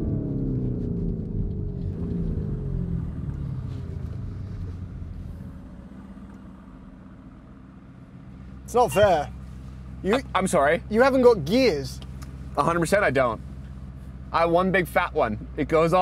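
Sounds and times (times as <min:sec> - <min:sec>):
car engine slowing down: 0:00.0 - 0:16.0.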